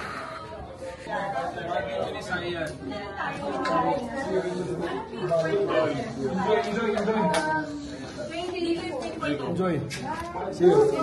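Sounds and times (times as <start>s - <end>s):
overlapping conversation: 0.0s - 11.0s.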